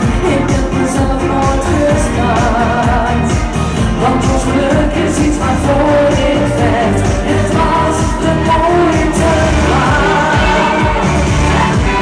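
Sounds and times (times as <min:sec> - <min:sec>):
live pop music backing: 0:00.0 - 0:12.0
woman singing into a microphone: 0:00.0 - 0:12.0.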